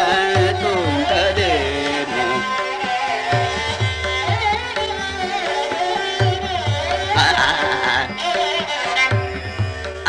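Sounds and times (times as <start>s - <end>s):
man singing melismatic phrases: 0.0s - 2.6s, 7.1s - 8.4s
tabla strokes: 0.0s - 10.0s.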